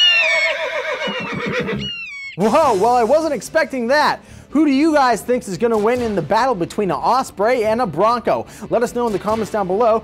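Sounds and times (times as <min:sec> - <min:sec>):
bird of prey shrill cry: 0:00.0 - 0:02.5
horse whinnying: 0:00.0 - 0:02.5.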